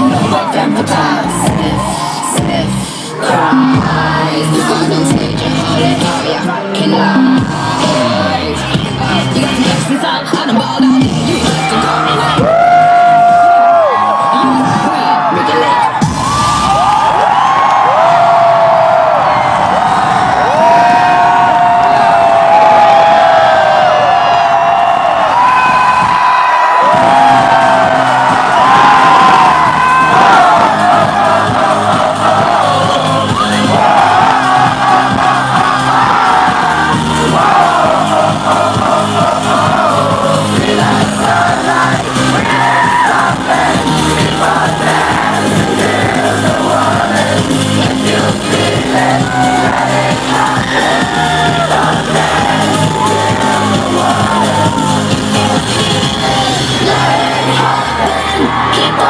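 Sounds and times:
crowd screaming and cheering: 0:00.0 - 0:59.0
dance-pop music with heavy bass: 0:00.0 - 0:59.0.

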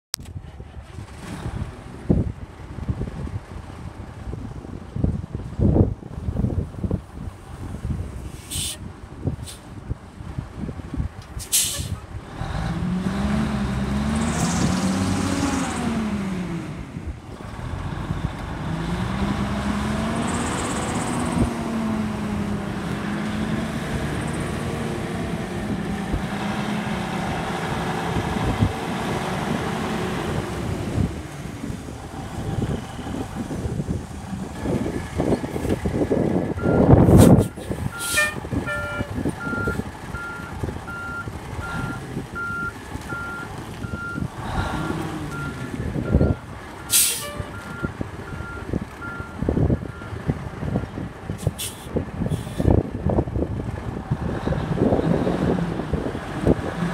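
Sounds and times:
diesel truck engine: 0:00.1 - 0:56.9
air-brake hiss: 0:08.3 - 0:08.8, 0:09.4 - 0:09.7, 0:11.4 - 0:12.0, 0:46.9 - 0:47.4, 0:51.4 - 0:52.7.

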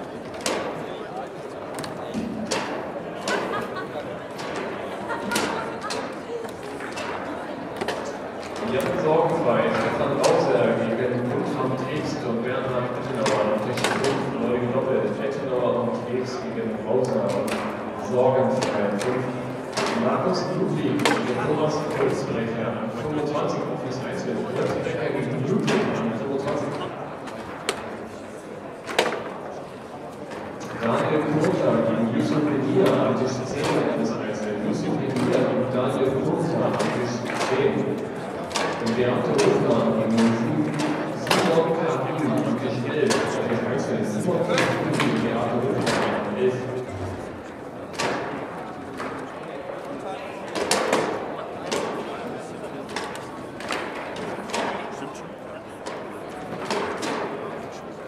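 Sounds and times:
murmur of voices: 0:00.0 - 0:58.0.

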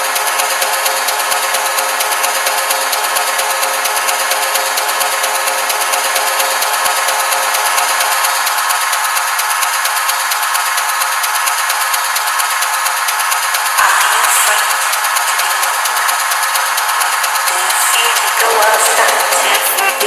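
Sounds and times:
techno high percussion and noise: 0:13.3 - 0:20.0.

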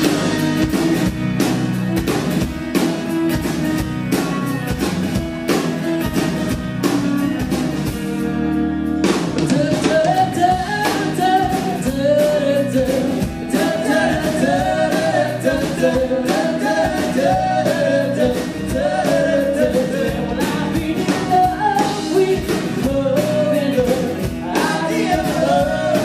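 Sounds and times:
drum kit: 0:00.0 - 0:26.0
electric bass: 0:00.0 - 0:26.0
strummed acoustic guitar: 0:00.0 - 0:26.0
lead vocal: 0:09.4 - 0:26.0.

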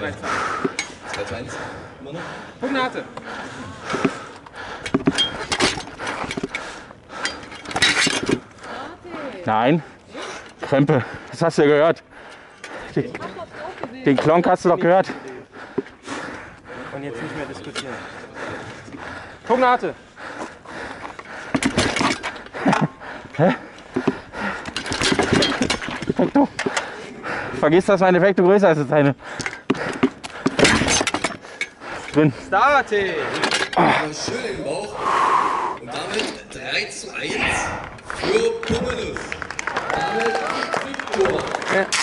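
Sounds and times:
weapons striking shields and armour: 0:29.7 - 0:31.4
men grunting: 0:32.0 - 0:34.9, 0:37.0 - 0:39.1.

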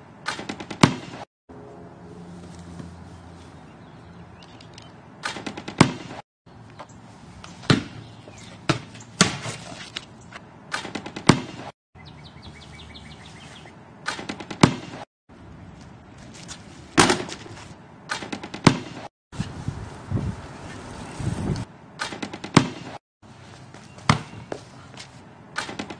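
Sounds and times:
basketball bouncing on pavement: 0:00.3 - 0:01.2, 0:05.2 - 0:06.2, 0:07.6 - 0:11.7, 0:14.1 - 0:15.0, 0:17.0 - 0:19.1, 0:22.1 - 0:23.0, 0:23.7 - 0:24.7.

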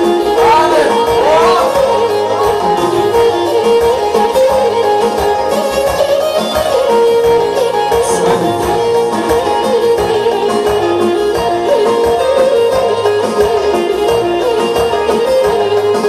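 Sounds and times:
instrumental folk dance music: 0:00.0 - 0:16.0.

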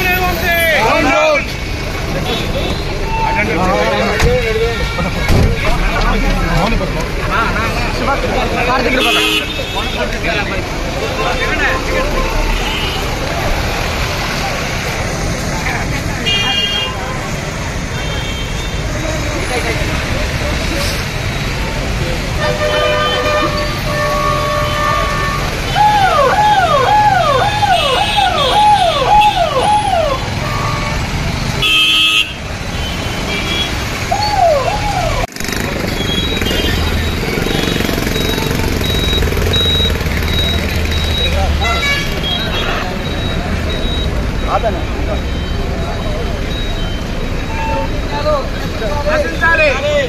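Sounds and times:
vehicle horn: 0:09.0 - 0:10.0, 0:22.4 - 0:25.7, 0:31.6 - 0:33.8
police siren wailing: 0:25.7 - 0:30.8, 0:34.1 - 0:35.3.

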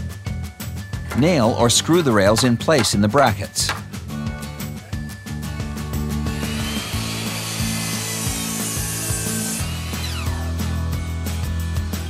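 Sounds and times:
background music: 0:00.0 - 0:12.0
power tool running on wood: 0:05.6 - 0:11.0.

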